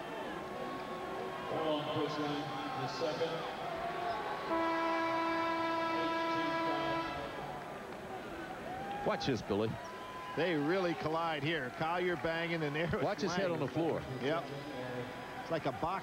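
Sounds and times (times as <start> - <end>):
crowd noise: 0.0 - 16.0
arena horn: 4.4 - 7.6.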